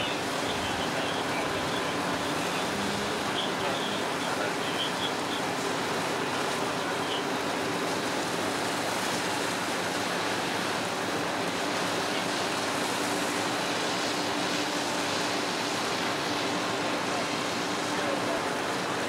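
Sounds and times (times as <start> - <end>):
fire hose spraying water: 0.0 - 19.0.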